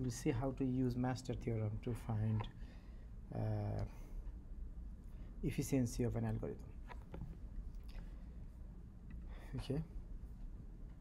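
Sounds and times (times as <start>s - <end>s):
faint low room hum: 0.0s - 11.0s.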